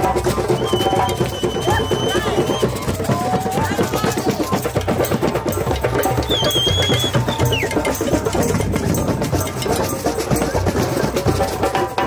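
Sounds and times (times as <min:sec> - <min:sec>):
drum ensemble playing fast rhythm: 0:00.0 - 0:12.0
high whistle-like tone: 0:00.4 - 0:02.9, 0:06.2 - 0:08.2.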